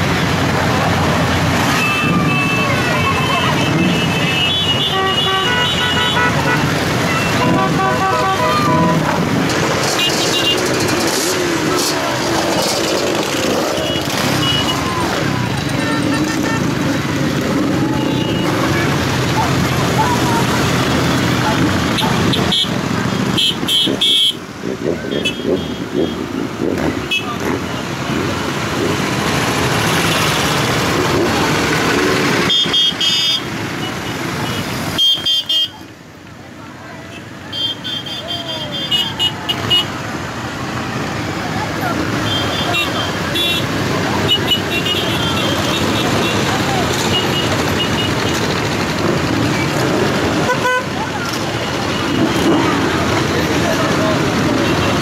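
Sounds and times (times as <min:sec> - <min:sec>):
motorcycles riding past: 0:00.0 - 0:35.0, 0:38.2 - 0:55.0
motorcycle horn toots: 0:01.7 - 0:09.2, 0:22.0 - 0:24.4, 0:32.4 - 0:33.4, 0:34.4 - 0:35.8, 0:42.2 - 0:43.7, 0:50.4 - 0:51.0.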